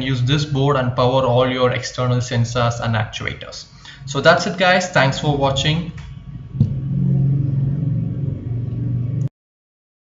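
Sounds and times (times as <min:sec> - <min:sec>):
low rumbling drone: 0:05.1 - 0:09.3
sudden low hit: 0:06.1 - 0:09.2.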